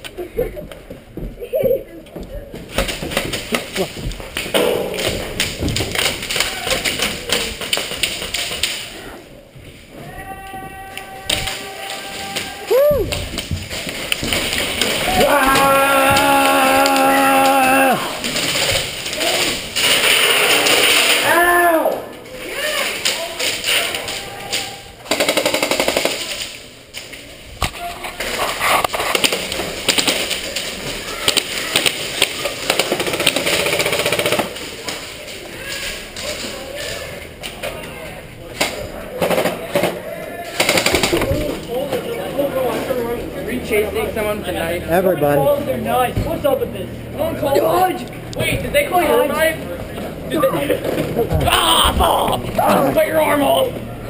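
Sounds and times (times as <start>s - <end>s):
airsoft guns popping: 2.8s - 8.9s, 29.1s - 34.6s
players yelling: 10.0s - 13.2s, 14.8s - 18.4s, 51.3s - 53.8s.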